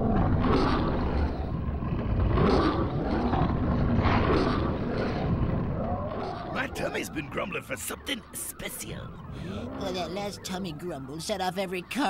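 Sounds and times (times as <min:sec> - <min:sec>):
cartoon stomach growl: 0:00.0 - 0:07.4.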